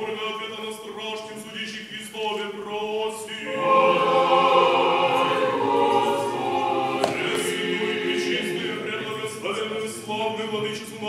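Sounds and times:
church choir singing a hymn: 2.2s - 11.0s.

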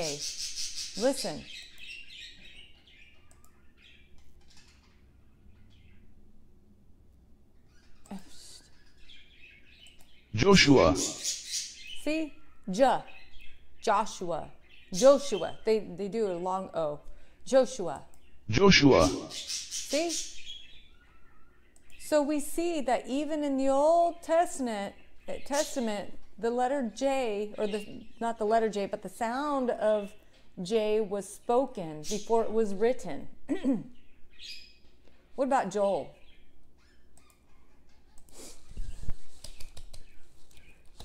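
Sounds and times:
faint bird chirps: 0.0s - 6.4s, 7.5s - 14.0s, 18.1s - 22.2s
person speaking: 10.4s - 11.3s, 18.5s - 20.2s.

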